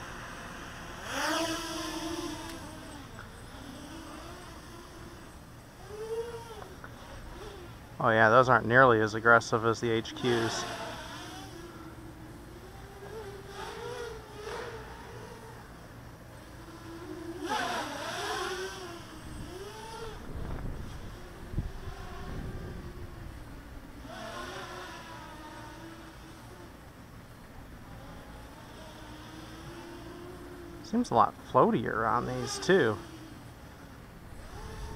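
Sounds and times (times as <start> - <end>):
quadcopter buzzing: 0.0 - 34.9.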